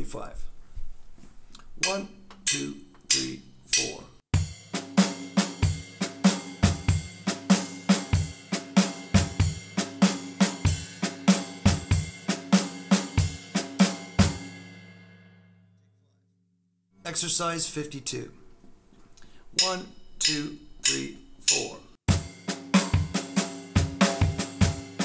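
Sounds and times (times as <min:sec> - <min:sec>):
snare drum strokes: 0:01.8 - 0:14.5, 0:21.5 - 0:25.0
ride cymbal pattern: 0:01.8 - 0:15.0, 0:19.6 - 0:25.0.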